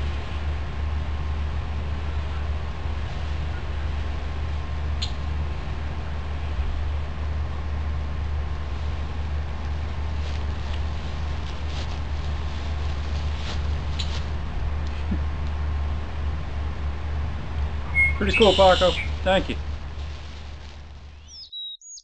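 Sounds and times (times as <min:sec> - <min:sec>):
low rumble and hiss: 0:00.0 - 0:21.4.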